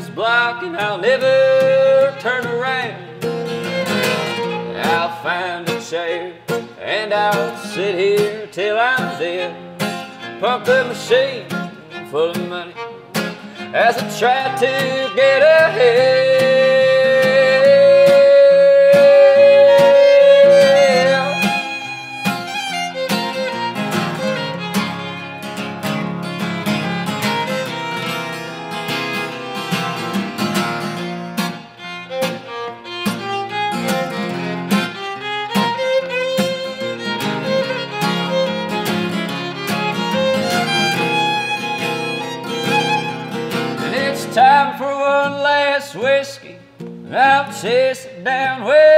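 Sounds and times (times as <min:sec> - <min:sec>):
acoustic guitar accompaniment: 0:00.0 - 0:48.9
fiddle playing quick notes: 0:03.4 - 0:05.1, 0:12.0 - 0:43.9.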